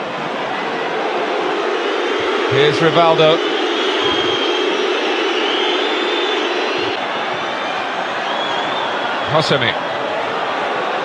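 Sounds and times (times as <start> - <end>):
stadium crowd roaring: 0.0 - 11.0.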